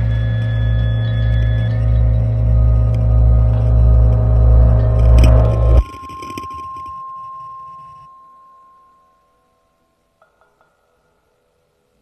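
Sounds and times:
low electronic drone: 0.0s - 6.9s
higher ringing tones: 0.0s - 10.1s.

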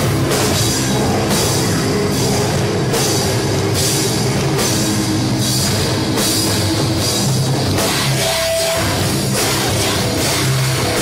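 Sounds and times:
metal band playing live: 0.0s - 11.0s.

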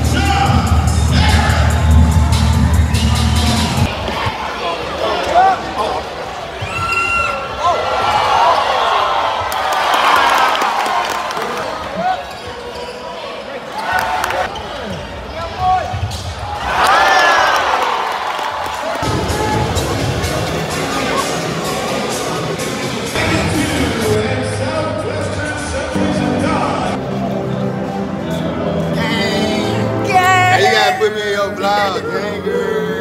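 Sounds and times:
arena music with heavy bass: 0.0s - 3.9s, 19.0s - 24.6s
crowd voices: 0.0s - 33.0s.

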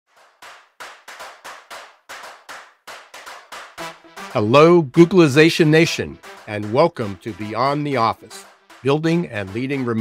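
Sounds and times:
sharp percussive hits: 0.1s - 10.0s.

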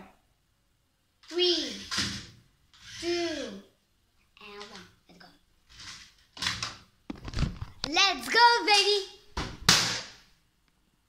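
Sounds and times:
child's voice: 1.2s - 1.9s, 2.9s - 3.8s, 4.4s - 5.4s, 7.8s - 9.2s.

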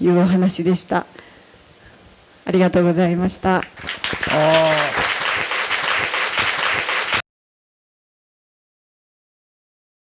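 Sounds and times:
person's voice: 2.5s - 5.0s
audience applauding: 3.6s - 7.2s.

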